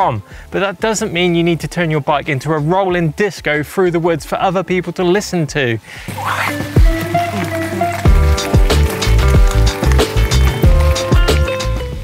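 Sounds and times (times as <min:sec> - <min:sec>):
music with heavy beat: 0:06.1 - 0:12.0.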